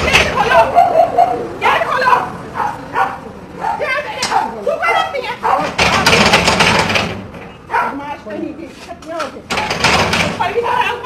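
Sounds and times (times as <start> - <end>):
people talking: 0.0 - 6.3, 7.7 - 11.0.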